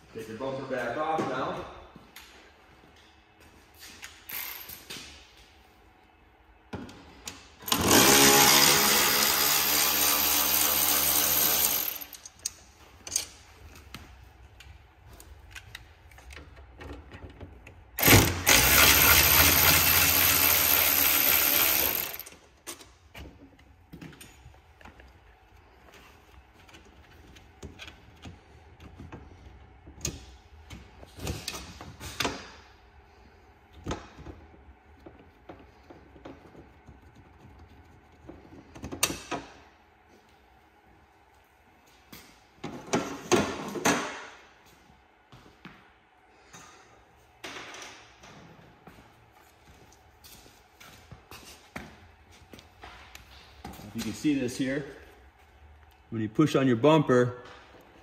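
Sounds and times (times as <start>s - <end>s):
cordless drill drilling: 7.7s - 12.0s, 18.0s - 22.3s.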